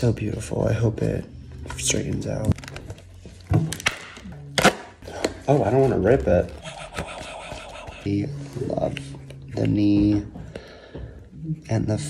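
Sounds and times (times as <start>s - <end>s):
packaging rustling: 1.8s - 4.0s
cardboard cracking and snapping: 2.4s - 4.9s.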